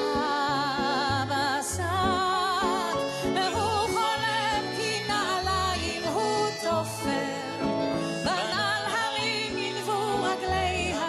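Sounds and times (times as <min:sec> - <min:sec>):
person singing with vibrato: 0:00.0 - 0:11.0.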